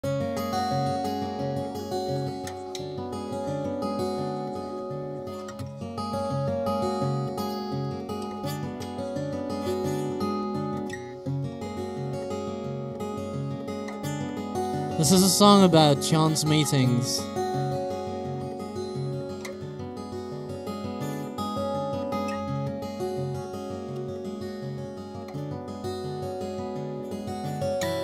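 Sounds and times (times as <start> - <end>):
acoustic guitar fingerpicking: 0.0 - 28.0.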